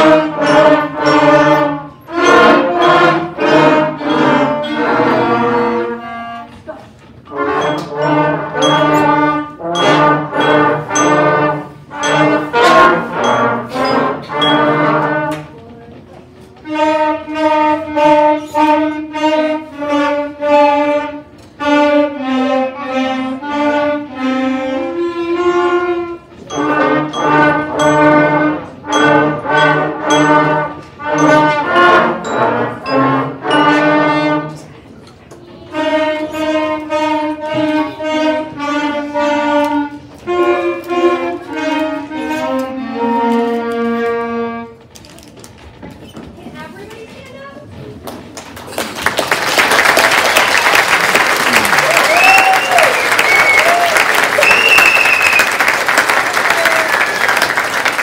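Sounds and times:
school wind band playing: 0.0 - 15.7, 16.4 - 45.0, 49.4 - 58.0.

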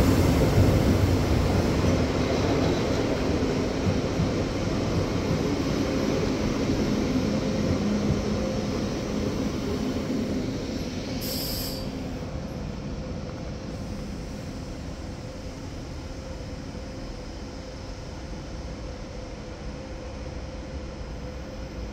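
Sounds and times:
train coaches rolling past: 0.0 - 21.9
short hiss: 11.2 - 12.1.

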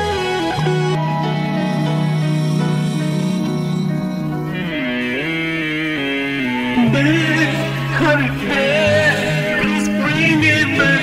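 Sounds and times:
strummed acoustic guitar: 0.0 - 11.0
man singing: 4.5 - 11.0.

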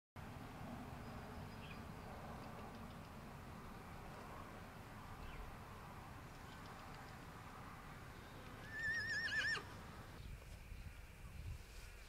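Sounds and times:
horse whinnying: 8.6 - 9.7.

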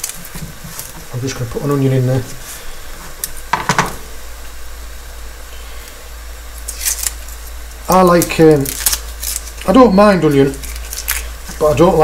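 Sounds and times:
onion skin crackling: 0.0 - 12.0.

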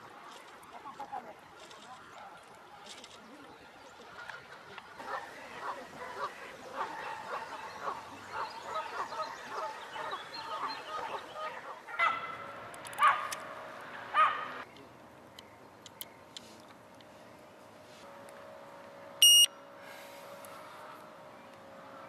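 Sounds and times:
waterfowl calling: 5.0 - 12.5.

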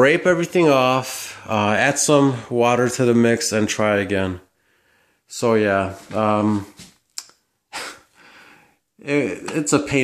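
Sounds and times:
mouth click: 7.1 - 7.4.

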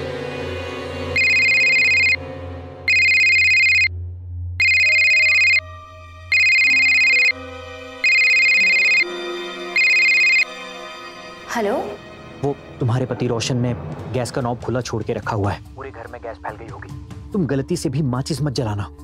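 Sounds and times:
smartphone electronic ringtone: 1.2 - 2.2, 2.9 - 3.9, 4.6 - 5.6, 6.3 - 7.4, 8.0 - 9.1, 9.8 - 10.5
low background music: 5.2 - 19.0.

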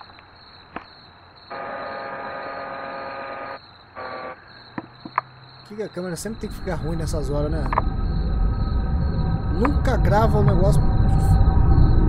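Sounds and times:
video tape hiss: 1.5 - 4.4.

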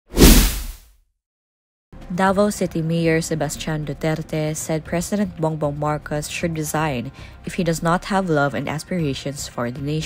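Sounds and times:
whoosh sound effect: 0.1 - 0.8.

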